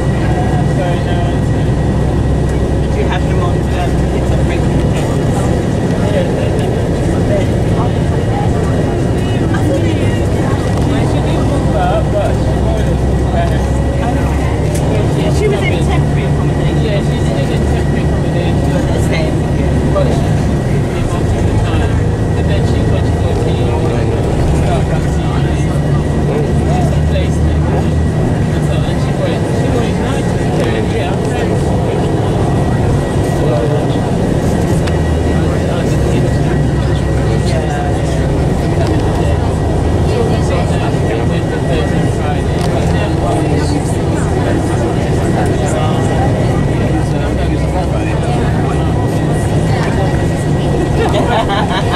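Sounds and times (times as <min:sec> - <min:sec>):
engine and road noise drone: 0:00.0 - 0:51.9
passengers talking indistinctly: 0:00.0 - 0:51.9.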